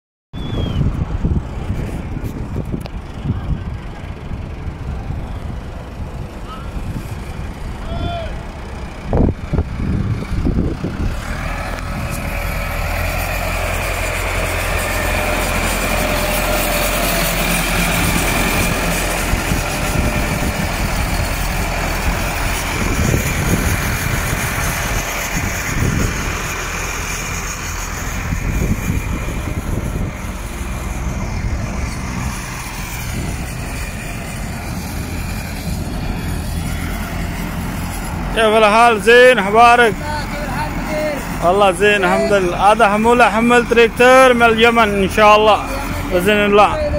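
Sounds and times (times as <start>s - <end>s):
truck engine running: 0.4s - 46.9s.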